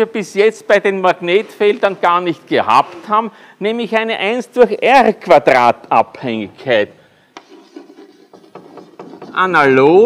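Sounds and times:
chalk tapping on blackboard: 7.4s - 9.7s
chalk scratching on blackboard: 7.4s - 9.8s.

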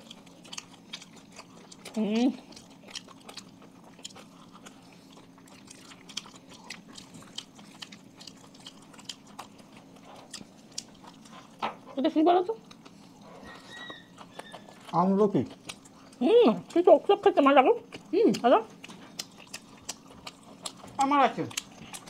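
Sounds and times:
faint low hum: 0.0s - 22.0s
people chewing: 0.0s - 22.0s.

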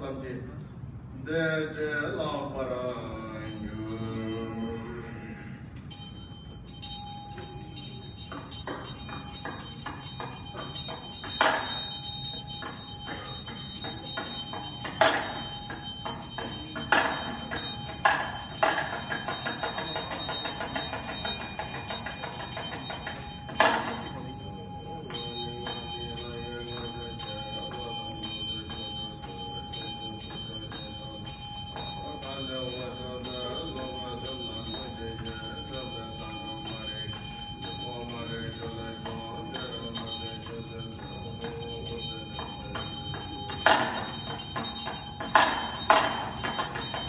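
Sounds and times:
bell ringing rapidly: 3.2s - 5.0s, 5.9s - 47.0s
person chanting through loudspeakers: 32.0s - 44.3s.

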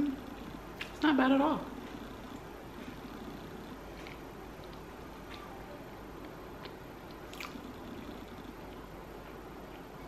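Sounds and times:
low room hum: 0.0s - 10.0s
person chewing food: 1.8s - 5.6s, 6.2s - 10.0s.

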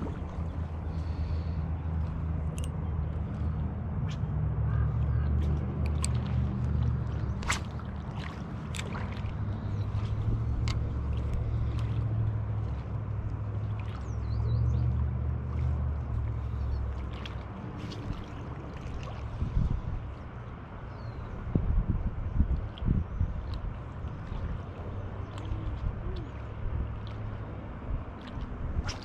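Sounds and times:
wind buffeting microphone: 0.0s - 2.4s, 17.8s - 27.0s.

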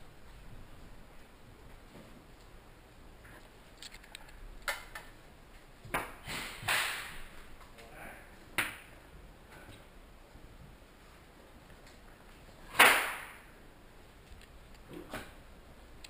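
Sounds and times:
airsoft gunfire cracks: 6.3s - 7.2s, 12.8s - 13.4s.

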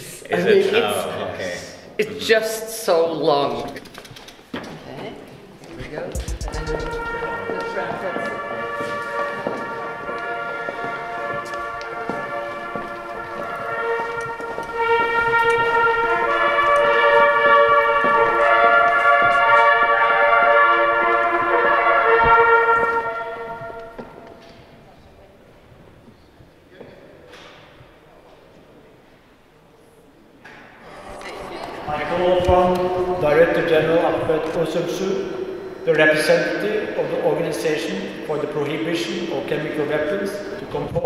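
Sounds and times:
large hall ambience: 0.0s - 41.0s
trumpet fanfare: 6.2s - 24.4s.

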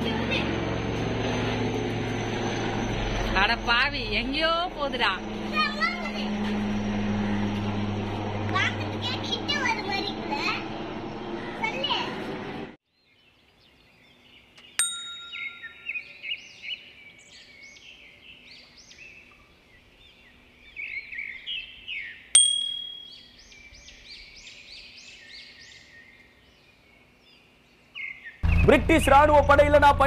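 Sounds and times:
small birds chirping: 12.9s - 29.9s
sharp metallic dings: 14.8s - 16.0s, 22.4s - 23.3s.

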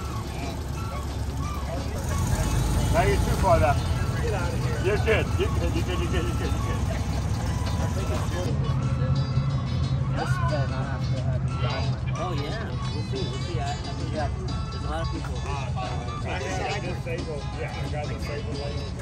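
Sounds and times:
car engine passing: 0.0s - 10.1s
voices: 0.0s - 19.0s.

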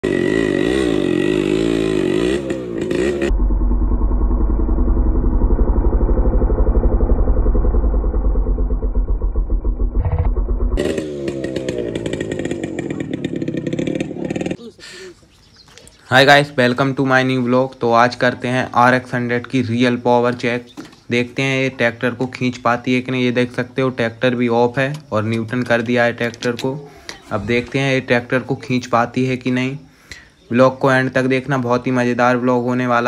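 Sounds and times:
rear tyre spinning: 0.0s - 14.6s
two-stroke motorcycle engine revving: 0.0s - 14.6s.

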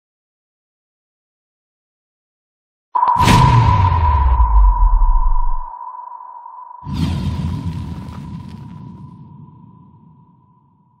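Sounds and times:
steady ringing tone: 3.0s - 6.9s
low rumble: 3.0s - 9.5s.

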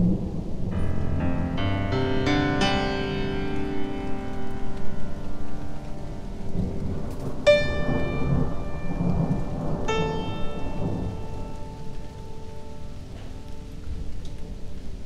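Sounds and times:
low rumbling thunder: 0.0s - 15.0s
rain: 0.0s - 15.0s
keyboard notes ringing: 0.7s - 14.2s.

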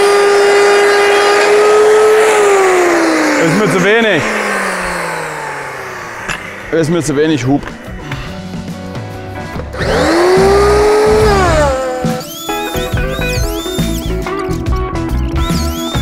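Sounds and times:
circular saw motor spinning: 0.0s - 8.0s, 9.7s - 14.5s, 15.3s - 16.0s
plucked guitar background music: 7.5s - 16.0s.

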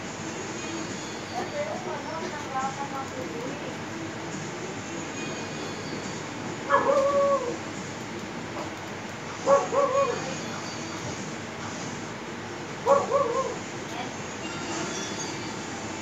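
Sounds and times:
steady background hum: 0.0s - 16.0s
dog calling: 6.7s - 7.6s, 9.5s - 10.2s, 12.9s - 13.6s.

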